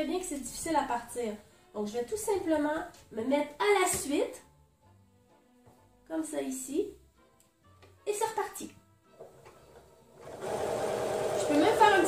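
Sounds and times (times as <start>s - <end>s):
sewing machine stitching: 10.2s - 12.0s.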